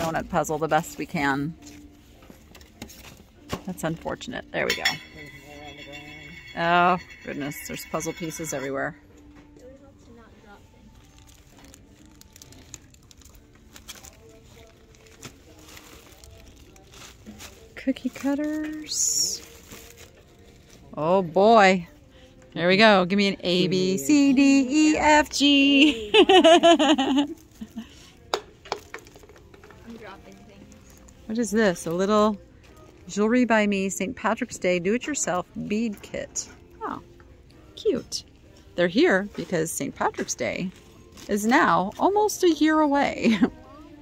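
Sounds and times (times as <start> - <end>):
plastic packaging crinkling: 10.9 - 20.8.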